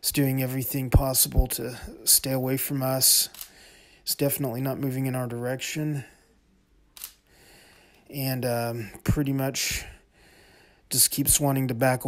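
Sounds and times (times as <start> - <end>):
sharp click: 3.3 - 3.6, 7.0 - 7.2.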